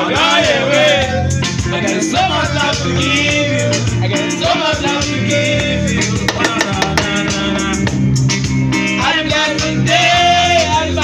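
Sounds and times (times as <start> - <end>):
man singing: 0.0 - 8.2, 8.8 - 11.0
hand drum and shaker percussion: 6.0 - 8.4.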